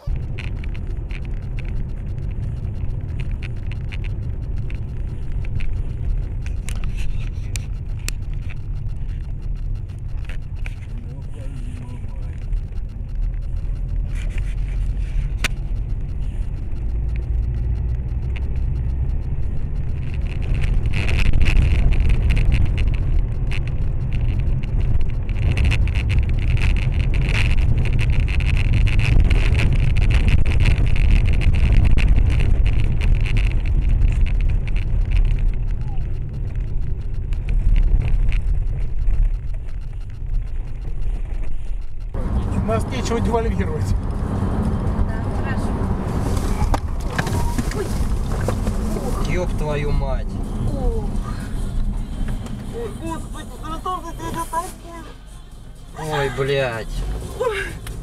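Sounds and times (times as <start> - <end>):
faint clicks: 0.0 - 54.8
engine and tyre rumble: 0.0 - 58.0.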